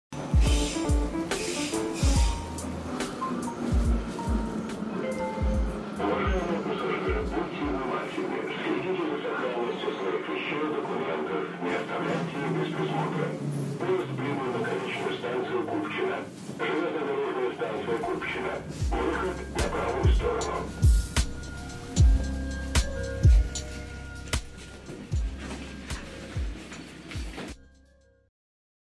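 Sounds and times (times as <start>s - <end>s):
heavy kick drums: 0.4s - 1.2s, 3.7s - 4.5s, 5.4s - 5.8s, 18.8s - 21.3s, 22.0s - 23.6s, 25.1s - 25.4s
rapping over a beat: 18.2s - 20.8s.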